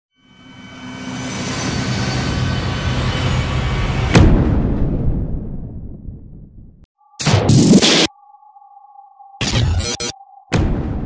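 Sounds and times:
booming hit: 4.0s - 6.7s, 10.5s - 11.0s.

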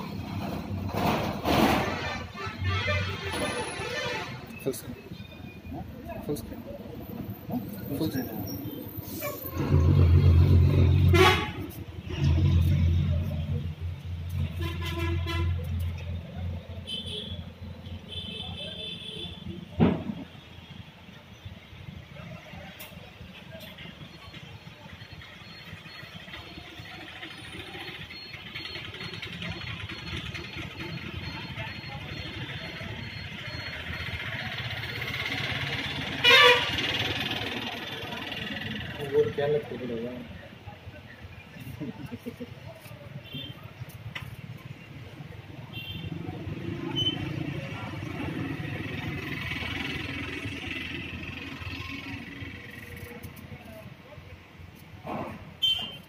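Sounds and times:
traffic background: 0.0s - 56.0s
vehicle horns honking: 1.8s - 4.8s, 10.9s - 12.4s, 14.4s - 15.9s, 16.8s - 19.6s, 36.1s - 37.0s, 45.7s - 46.2s, 55.6s - 56.0s.

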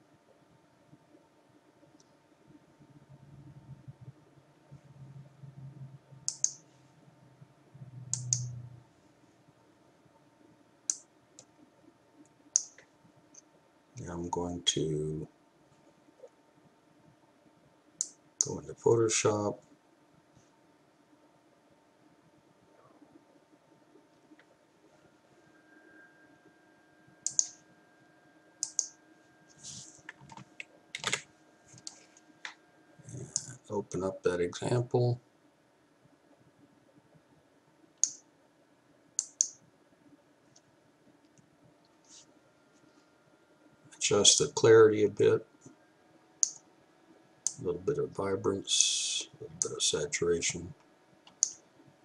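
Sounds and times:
faint low hum: 0.0s - 52.0s
computer mouse clicking: 6.3s - 6.6s, 8.1s - 8.5s, 12.5s - 13.4s, 27.2s - 27.6s, 28.6s - 29.0s, 31.8s - 32.6s, 38.0s - 38.2s, 39.2s - 39.6s, 46.4s - 46.6s, 51.2s - 51.6s
mouse and keyboard clicks: 27.3s - 27.6s, 28.6s - 28.9s.

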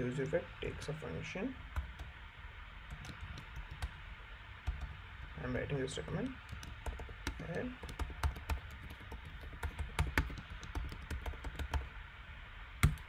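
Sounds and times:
computer keyboard typing: 1.8s - 2.1s, 2.9s - 4.0s, 4.6s - 11.9s.

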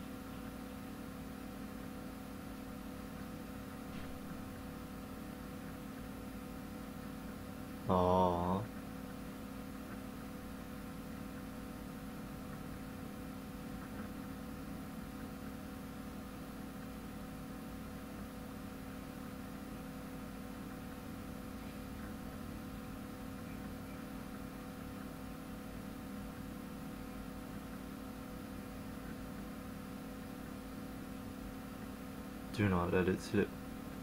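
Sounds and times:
electrical hum: 0.0s - 34.0s.

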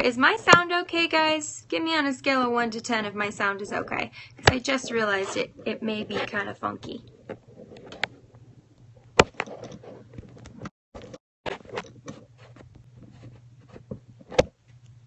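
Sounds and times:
low steady hum: 0.0s - 10.6s.

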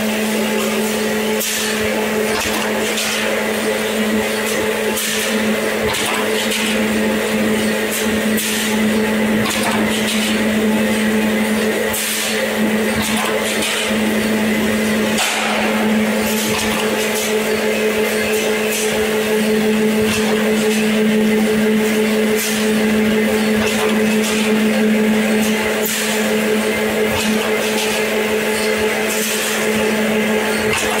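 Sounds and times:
machine humming: 0.0s - 31.0s.

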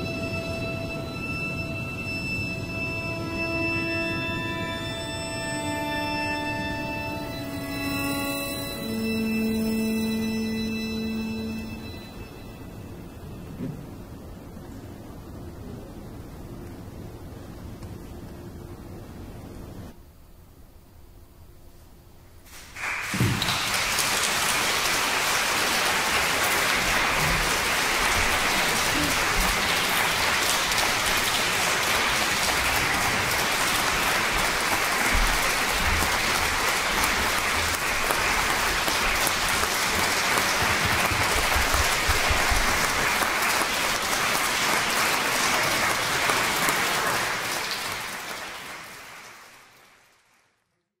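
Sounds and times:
audience applause: 22.5s - 50.7s.

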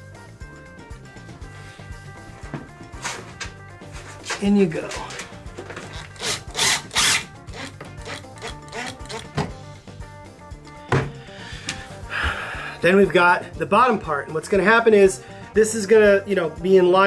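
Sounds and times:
background music: 0.0s - 17.0s
impact driver driving screw into wood: 5.9s - 9.4s.

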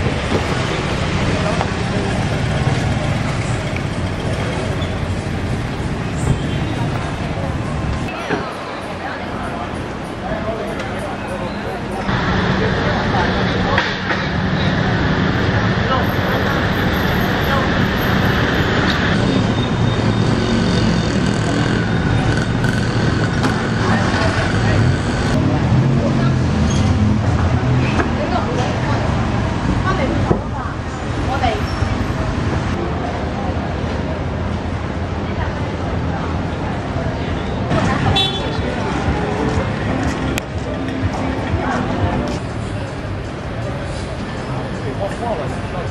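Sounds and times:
indistinct voices: 0.0s - 45.9s
traffic engines running: 0.0s - 45.9s
background music: 38.6s - 42.4s.

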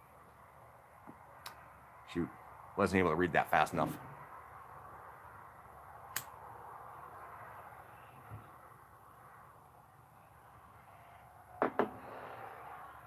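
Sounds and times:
outdoor background hiss: 0.0s - 13.0s
sharp click: 6.1s - 6.3s.

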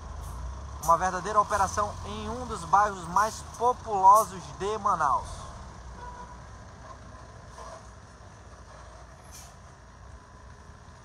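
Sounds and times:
traffic engines rumbling: 0.0s - 11.0s.

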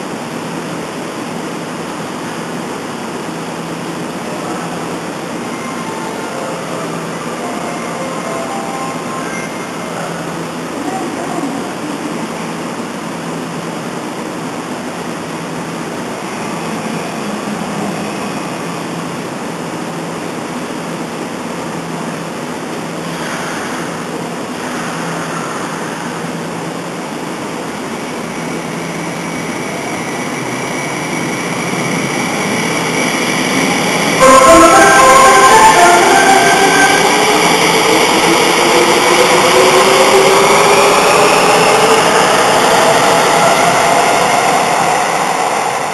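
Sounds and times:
train rumble: 0.0s - 45.9s
train horn melody: 34.2s - 38.3s.

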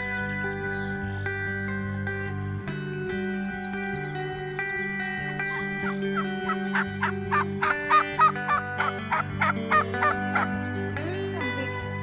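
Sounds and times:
background music: 0.0s - 12.0s
turkey calling: 5.5s - 10.5s.

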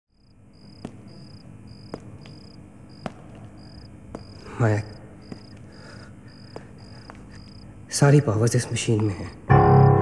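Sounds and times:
cricket chirping: 0.1s - 10.0s.

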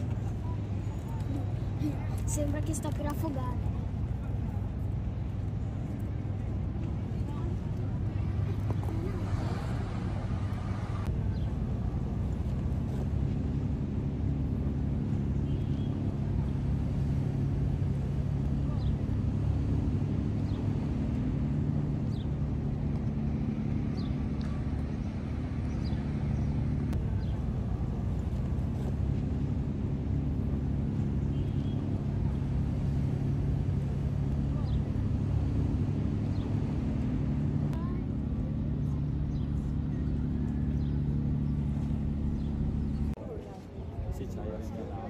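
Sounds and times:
ferry engines droning: 0.0s - 45.0s.

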